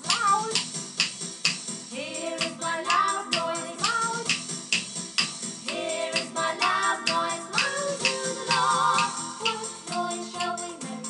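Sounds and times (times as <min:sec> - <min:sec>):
wooden rhythm sticks clicking: 0:00.0 - 0:01.7, 0:02.3 - 0:10.7
woman singing: 0:01.9 - 0:04.3, 0:05.7 - 0:11.0.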